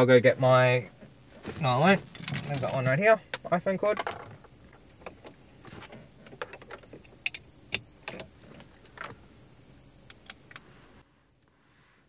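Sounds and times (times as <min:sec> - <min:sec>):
phone cable clicks and rustles: 0:01.6 - 0:09.2.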